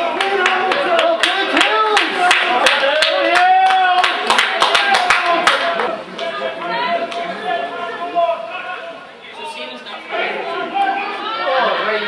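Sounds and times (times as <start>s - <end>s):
scattered handclaps: 0.0s - 6.4s
men calling out: 4.9s - 12.0s.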